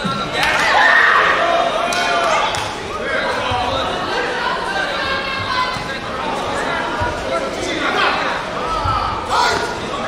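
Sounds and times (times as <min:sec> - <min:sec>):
voices calling out in a hall: 0:00.0 - 0:10.0.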